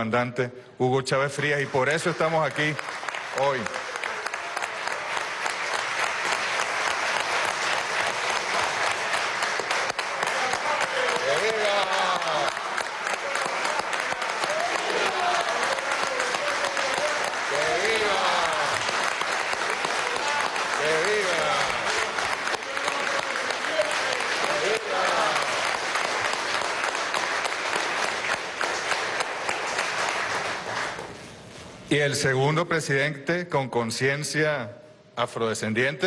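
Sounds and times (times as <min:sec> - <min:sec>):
crowd applauding: 0:01.3 - 0:31.2.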